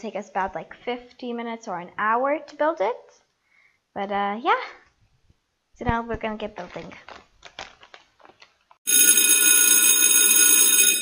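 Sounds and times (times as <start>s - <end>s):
paper rustling and clicks: 6.6s - 8.8s
loud bell-like ringing: 8.9s - 11.0s.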